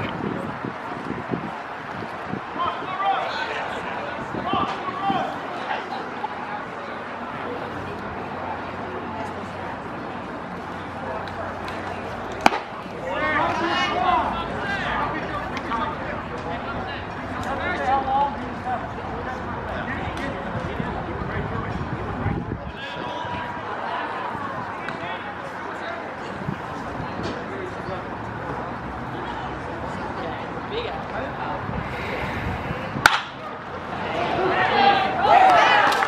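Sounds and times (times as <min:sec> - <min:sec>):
crowd chatter: 0:00.0 - 0:36.0.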